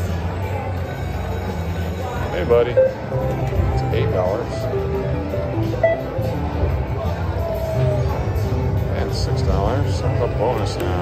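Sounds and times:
low casino hum: 0.0 - 11.0
short electronic tones: 2.6 - 4.8, 5.6 - 6.4.

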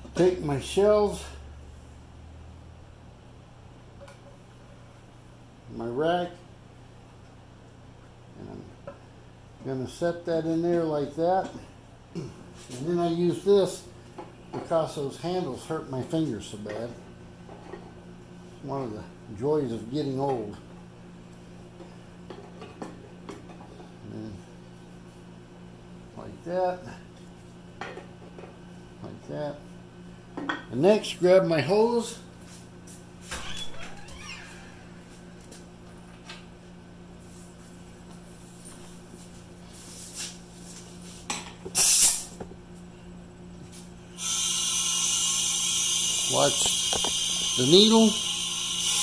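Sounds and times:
steady low hum: 0.0 - 49.0
burst of air: 41.7 - 42.3
compressed air hissing: 41.7 - 42.3.

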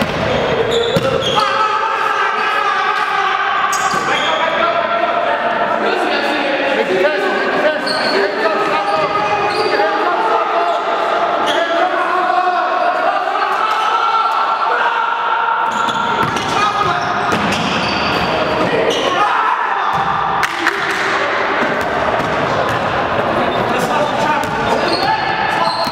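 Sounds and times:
players calling out: 0.0 - 25.9.

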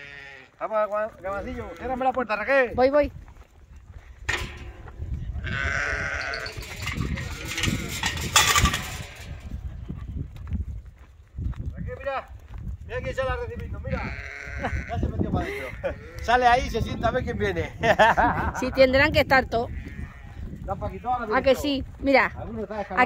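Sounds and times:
lambs bleating: 0.0 - 0.6, 5.4 - 8.3, 13.9 - 16.4, 19.7 - 20.4.

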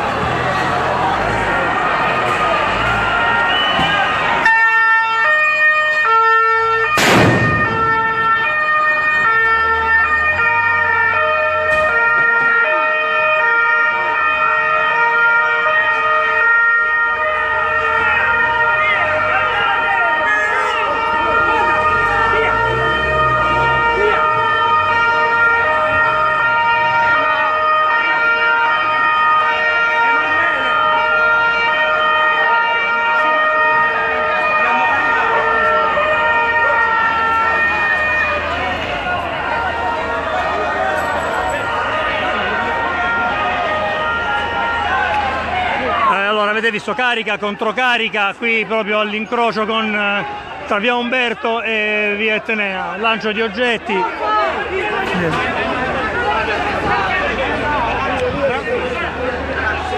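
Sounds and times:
crowd shouting: 0.0 - 5.3, 10.1 - 59.9
two-tone police siren: 0.0 - 59.9
sharp bang: 7.0 - 8.1.

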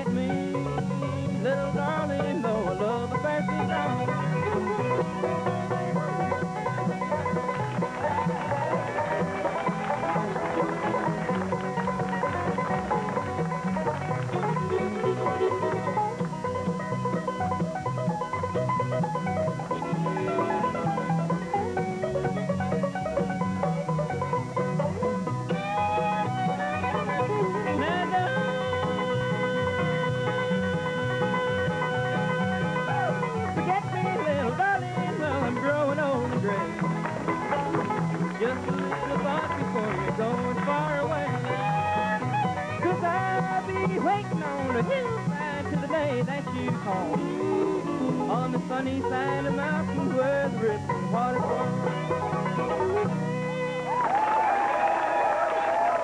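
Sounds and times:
mandolin: 0.0 - 54.4
upright bass: 0.0 - 54.4
banjo: 0.0 - 56.0
fiddle: 0.0 - 56.0
guitar: 0.0 - 56.0.

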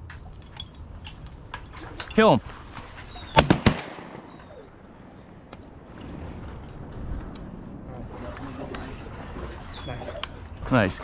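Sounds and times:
shotgun shots: 3.4 - 4.7.

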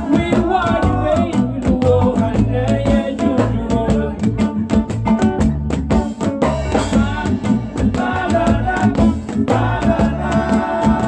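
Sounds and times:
person singing: 0.0 - 4.4, 6.7 - 11.0
bass line: 0.0 - 11.0
drums: 0.0 - 11.0
electric guitar: 0.0 - 11.0
shaker percussion: 0.0 - 11.0.

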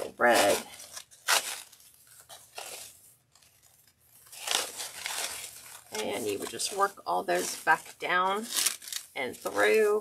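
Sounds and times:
ribbon rustling and crinkling: 0.0 - 10.0.

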